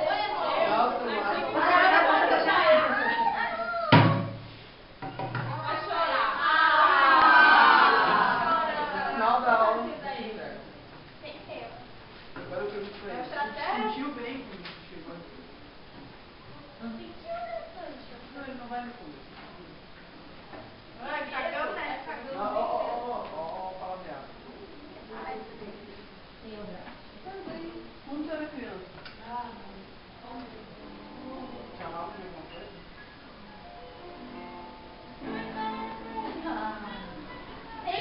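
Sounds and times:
voices: 0.0s - 4.2s, 5.5s - 11.9s, 35.1s - 38.0s.

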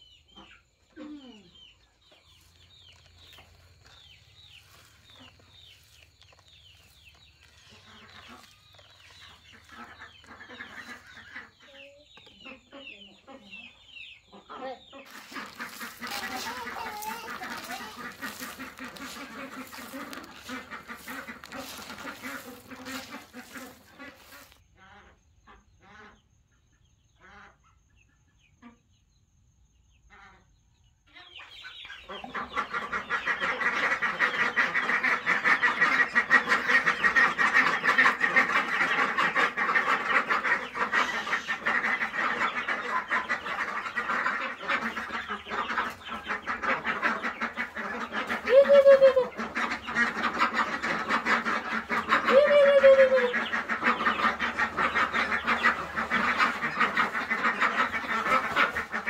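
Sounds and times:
ducks calling: 0.0s - 26.2s, 31.1s - 59.0s
loud falling duck calls: 3.3s - 11.6s, 15.1s - 24.6s, 32.1s - 59.0s.

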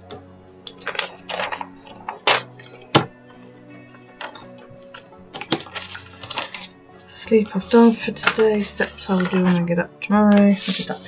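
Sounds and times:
pages clicking on metal rings: 0.7s - 2.8s, 4.2s - 6.7s, 7.5s - 11.0s
paper rustling: 0.7s - 11.0s.

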